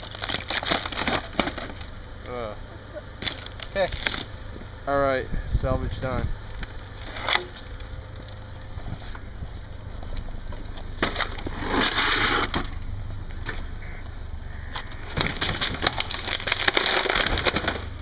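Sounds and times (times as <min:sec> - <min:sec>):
tyre crunching plastic monitor: 0:00.0 - 0:01.9, 0:03.2 - 0:04.3, 0:14.7 - 0:18.0.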